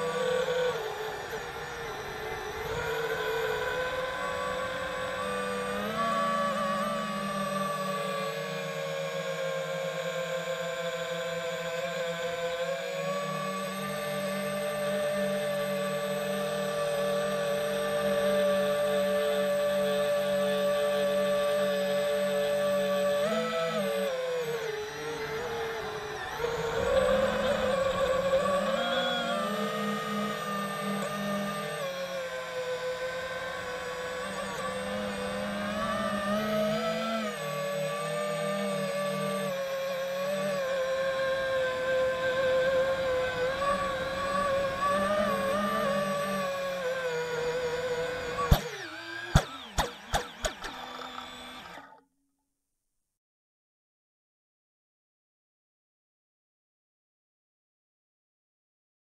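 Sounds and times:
drone propellers whining: 0.0s - 52.0s.

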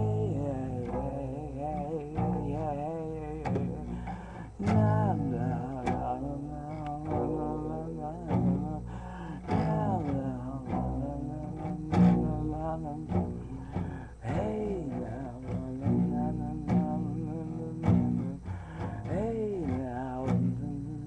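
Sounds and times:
acoustic guitar strumming: 0.0s - 21.0s
man singing wordlessly: 0.0s - 21.0s.

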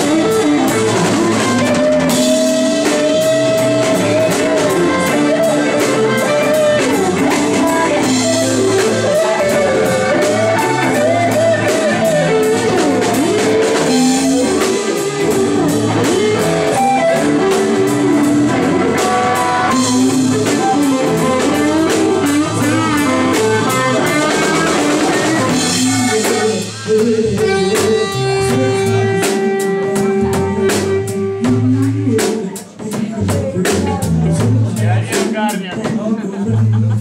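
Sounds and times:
electric guitar lead: 0.0s - 35.9s
blues band playing: 0.0s - 37.0s.

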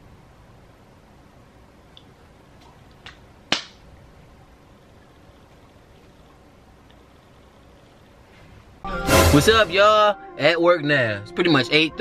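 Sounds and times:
sharp hand clap: 3.0s - 3.8s.

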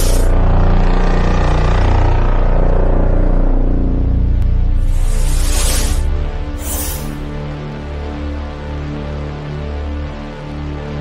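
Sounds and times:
deep steady drone: 0.0s - 11.0s.

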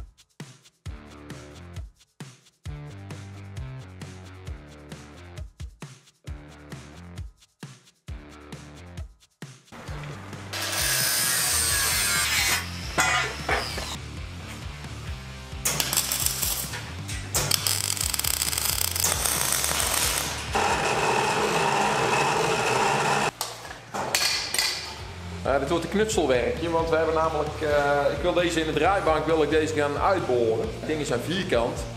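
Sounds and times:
background music with bass: 0.0s - 10.8s, 12.6s - 20.6s, 24.9s - 31.9s
welding crackling hiss: 15.7s - 20.6s.

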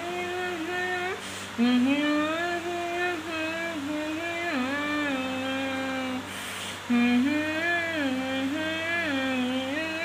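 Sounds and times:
woman humming muffled: 0.0s - 10.0s.

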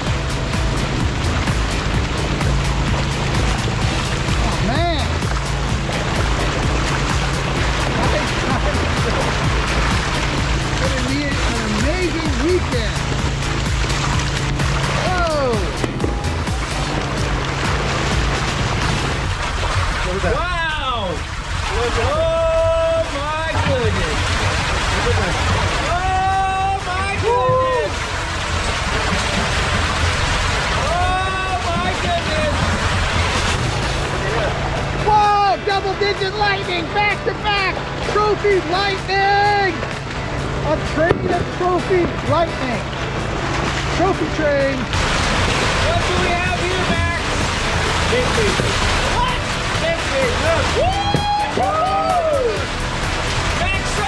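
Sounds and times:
low hum: 0.0s - 54.0s
water gushing down a chute: 0.0s - 54.0s
voices calling out: 21.7s - 54.0s.

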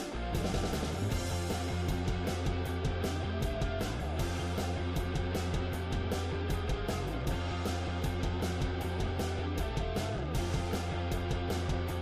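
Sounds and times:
guitar: 0.0s - 12.0s
steady drum beat: 0.0s - 12.0s.

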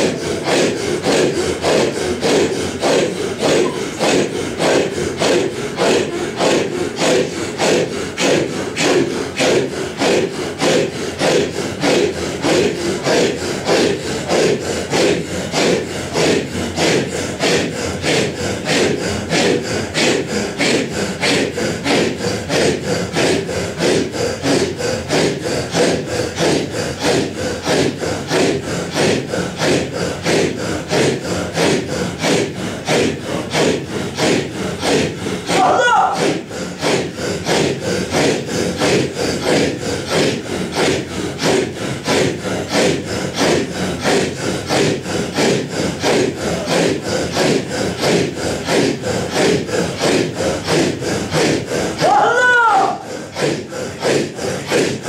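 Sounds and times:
men chanting with forceful breaths: 0.0s - 55.0s.

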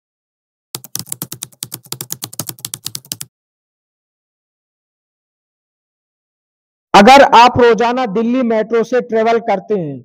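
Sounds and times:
computer keyboard typing: 0.8s - 3.3s.

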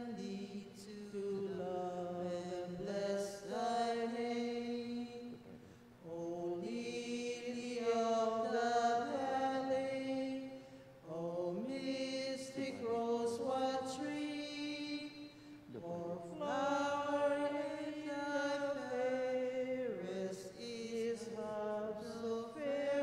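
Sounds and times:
slow hymn singing: 0.0s - 23.0s.

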